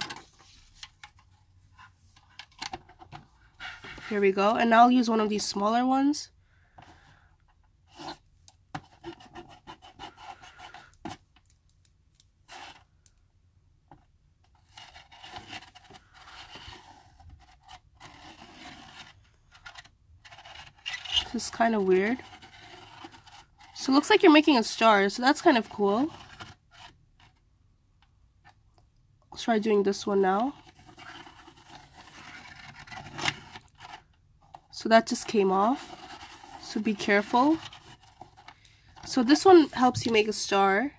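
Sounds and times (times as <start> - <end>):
pencil scratching on paper: 8.9 - 11.0, 21.1 - 23.9.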